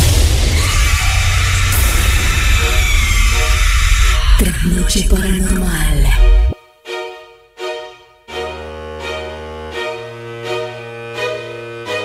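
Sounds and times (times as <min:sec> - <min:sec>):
dark horror jingle music: 0:00.0 - 0:06.6.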